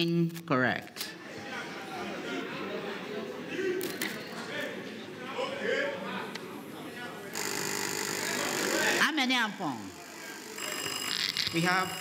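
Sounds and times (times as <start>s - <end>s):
murmur of voices in a hall: 0.0s - 12.0s.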